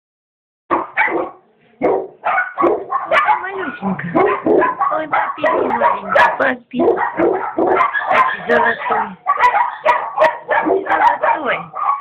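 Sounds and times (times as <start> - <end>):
puppy yapping and barking: 0.7 - 12.0.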